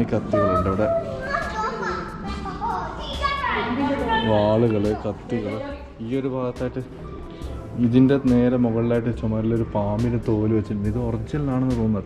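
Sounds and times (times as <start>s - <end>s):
children talking and calling out: 0.0s - 11.2s.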